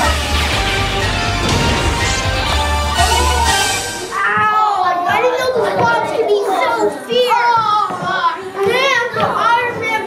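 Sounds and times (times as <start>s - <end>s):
children shouting: 2.1s - 10.0s.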